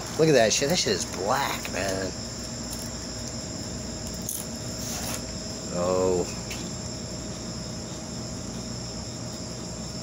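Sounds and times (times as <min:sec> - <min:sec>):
high-pitched insect trilling: 0:00.2 - 0:10.0.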